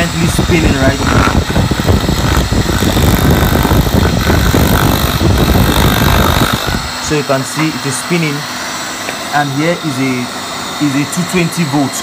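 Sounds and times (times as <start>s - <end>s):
wood grinding on spinning shaft: 0.0s - 8.3s
electric motor running: 0.0s - 12.0s.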